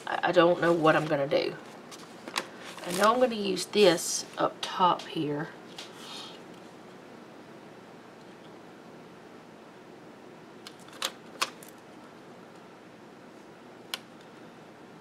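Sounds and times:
faint room hiss: 0.0s - 15.0s.

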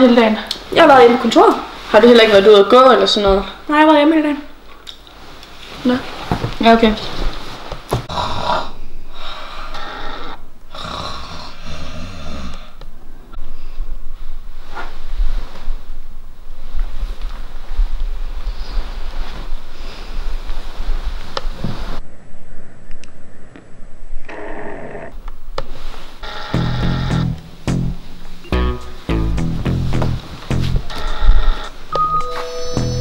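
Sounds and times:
man snoring: 8.1s - 12.8s.

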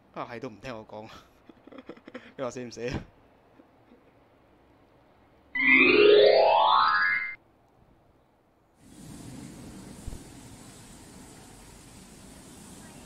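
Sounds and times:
outdoor background hiss: 0.0s - 13.0s
cartoon rising pitch glide: 5.6s - 7.4s.

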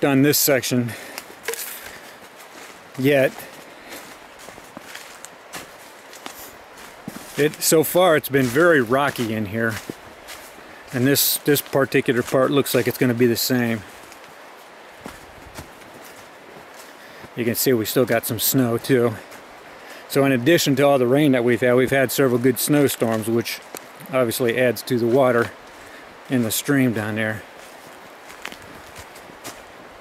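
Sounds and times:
steady background hiss: 0.0s - 30.0s
footsteps on dry leaves: 0.2s - 17.4s, 24.9s - 30.0s.

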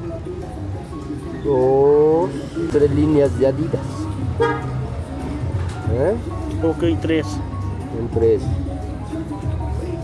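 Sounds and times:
street traffic hum: 0.0s - 10.0s
vehicle horn toot: 4.4s - 4.8s.

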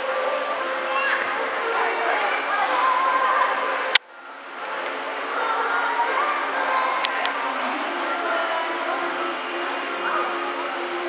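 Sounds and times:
children's choir singing: 0.0s - 11.0s.

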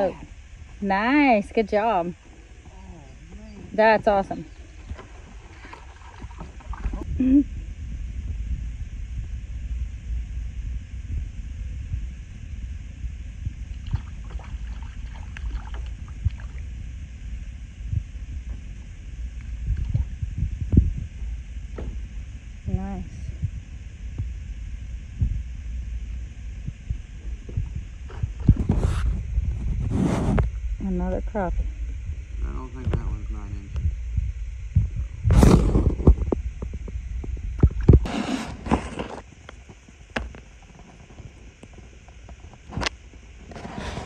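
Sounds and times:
voices: 0.0s - 4.9s
wind rumble on microphone: 0.0s - 38.1s
paddle water sounds: 3.3s - 7.2s, 13.8s - 16.7s.

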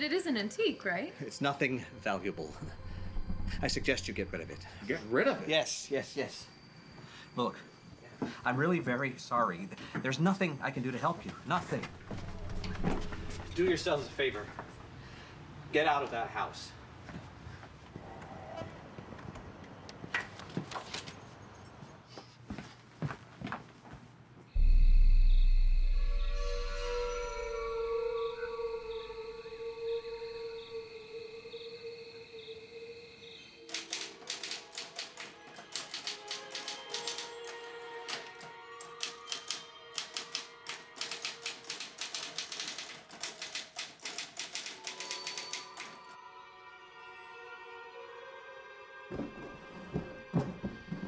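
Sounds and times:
held orchestral score tones: 1.5s - 5.2s, 11.7s - 14.5s, 24.6s - 34.2s
deep boom: 2.5s - 4.8s, 24.6s - 28.0s
typewriter keys clattering: 33.7s - 46.0s.

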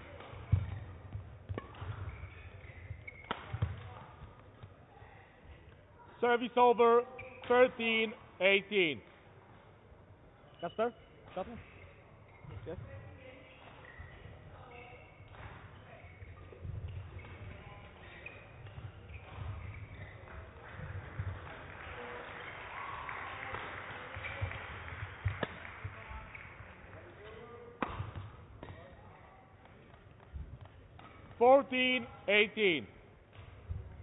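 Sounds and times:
rackets striking shuttlecock: 0.1s - 3.9s, 25.3s - 25.6s, 27.8s - 29.0s
shoes squeaking on court: 0.1s - 4.9s, 6.8s - 8.1s, 8.8s - 21.3s, 24.1s - 34.0s.

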